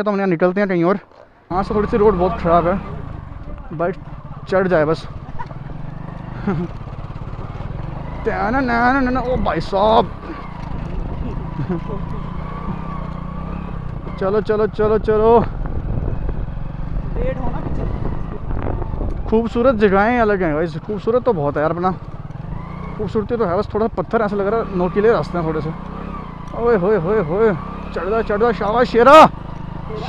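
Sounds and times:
motorcycle engine at low revs: 0:01.0 - 0:30.0.

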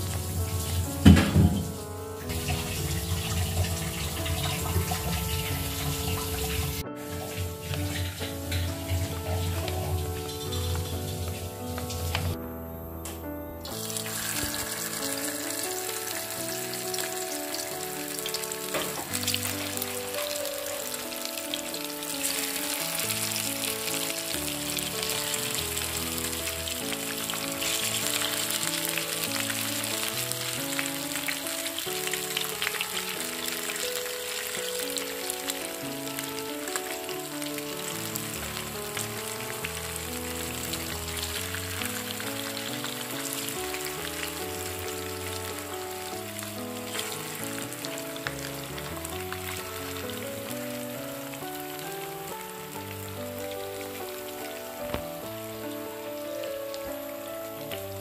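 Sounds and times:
fish frying in hot oil: 0:00.0 - 0:12.4, 0:13.7 - 0:58.0
background music: 0:00.0 - 0:58.0.

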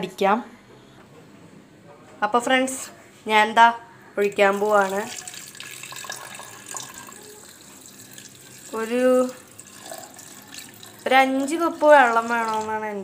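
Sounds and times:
water pouring into steel vessel: 0:04.3 - 0:12.7.

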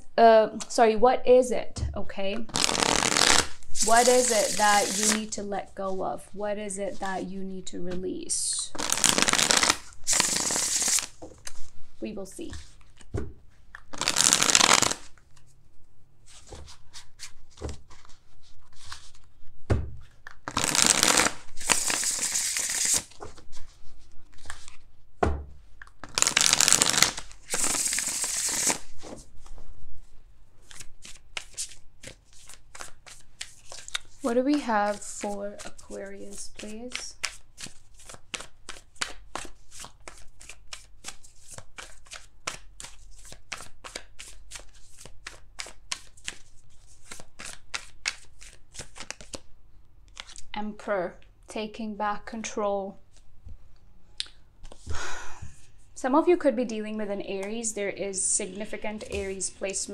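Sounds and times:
cards being shuffled: 0:02.5 - 0:05.3, 0:08.8 - 0:11.7, 0:12.4 - 0:15.6, 0:16.2 - 0:19.4, 0:20.0 - 0:24.9, 0:25.8 - 0:29.6, 0:30.6 - 0:49.5, 0:50.1 - 0:50.5, 0:54.6 - 0:54.9.

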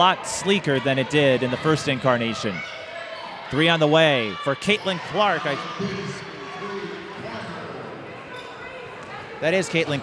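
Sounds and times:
basketball court noise: 0:00.0 - 0:10.0.

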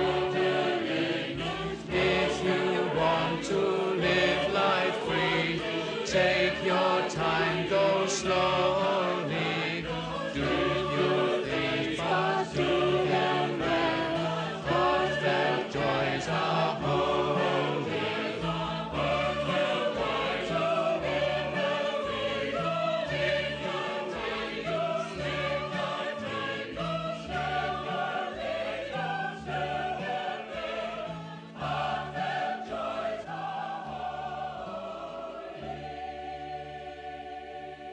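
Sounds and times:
choir singing a hymn: 0:00.0 - 0:37.9.

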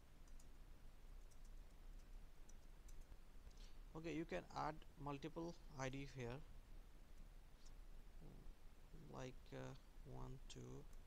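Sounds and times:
faint computer clicks: 0:00.2 - 0:00.6, 0:01.2 - 0:03.7.

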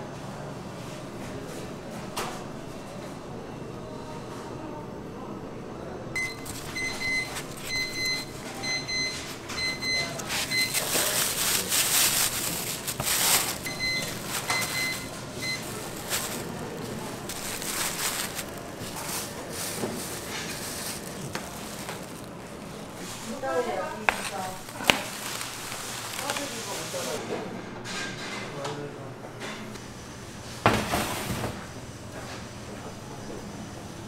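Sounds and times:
appliance short beeps: 0:06.2 - 0:10.9, 0:13.6 - 0:15.8
plastic bags crinkling: 0:06.2 - 0:27.2.

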